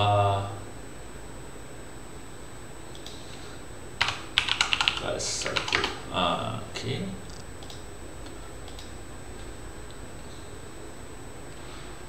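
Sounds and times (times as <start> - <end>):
steady background hiss: 0.0 - 12.0
keyboard typing clicks: 2.9 - 3.2, 4.0 - 6.0, 7.3 - 9.0.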